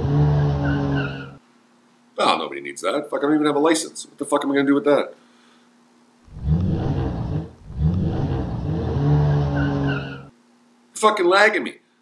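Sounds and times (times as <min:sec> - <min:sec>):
sports car engine revving: 0:00.0 - 0:01.2, 0:06.3 - 0:10.3.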